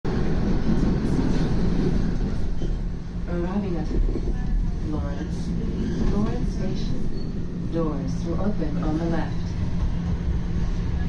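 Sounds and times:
subway train rumbling in tunnel: 0.0 - 11.0.

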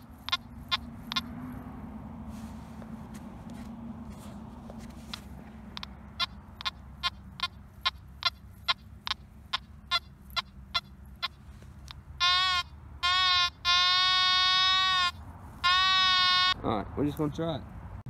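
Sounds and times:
metal detector short beeps: 0.0 - 1.3, 5.1 - 11.4
metal detector steady tones: 0.0 - 1.6, 3.6 - 16.6.

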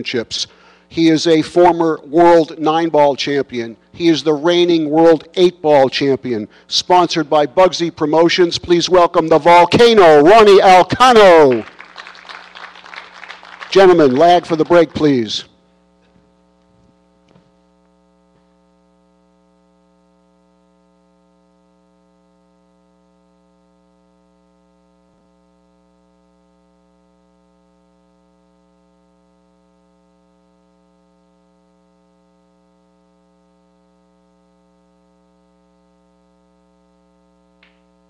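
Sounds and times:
faint electrical mains hum: 0.0 - 38.0.

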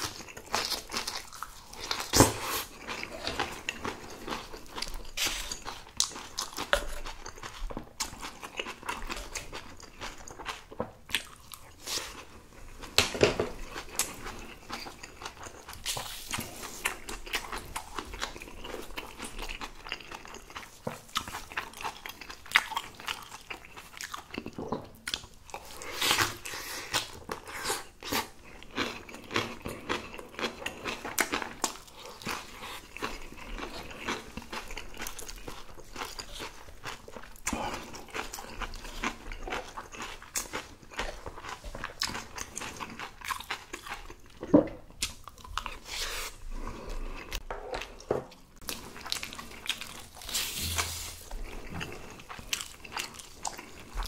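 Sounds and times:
crunchy chewing: 0.0 - 12.9, 13.5 - 54.0.

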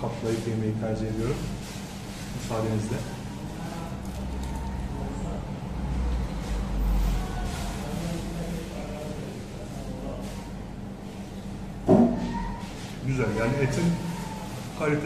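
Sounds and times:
distant voices: 0.0 - 15.0.

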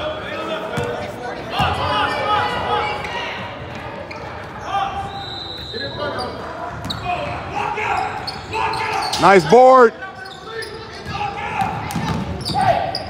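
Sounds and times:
shouts and voices echoing: 7.0 - 13.0.

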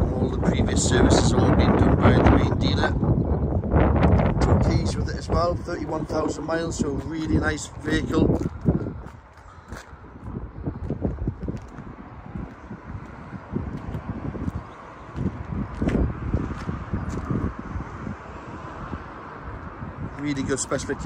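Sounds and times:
wind buffeting microphone: 0.0 - 21.0
footsteps on tarmac: 5.0 - 21.0.

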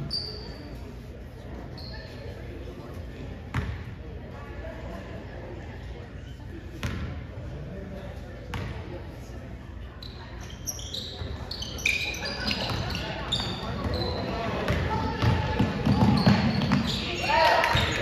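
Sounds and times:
sneaker squeaks on court: 0.0 - 0.8, 1.7 - 2.3, 10.0 - 18.0
voices in echoing gym: 0.0 - 18.0.

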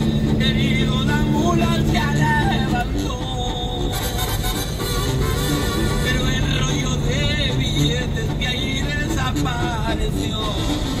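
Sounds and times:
road noise: 0.0 - 11.0
song playing: 0.0 - 11.0
truck engine drone: 0.0 - 11.0.

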